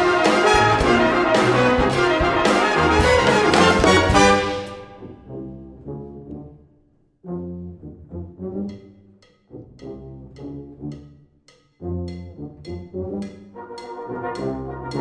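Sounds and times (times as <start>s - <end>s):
brass band playing funk riff: 0.0s - 5.5s, 12.0s - 15.0s
high percussion tick: 8.6s - 15.0s.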